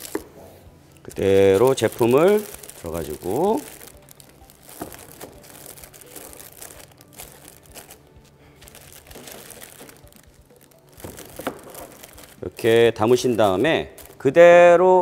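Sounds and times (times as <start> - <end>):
plastic bags crinkling: 1.0 - 14.4.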